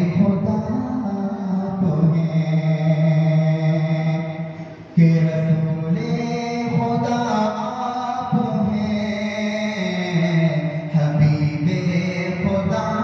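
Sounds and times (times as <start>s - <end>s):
man chanting into a microphone: 0.0s - 13.0s.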